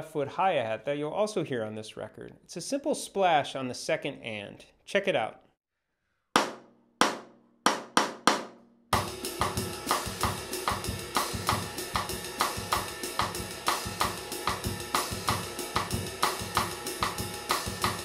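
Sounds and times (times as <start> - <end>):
drum kit groove: 9.0 - 18.0
ride cymbal: 9.0 - 18.0.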